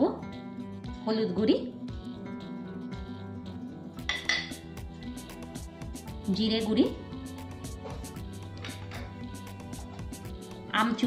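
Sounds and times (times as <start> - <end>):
background music: 0.0 - 11.0
glass bowls clinking: 4.0 - 4.7.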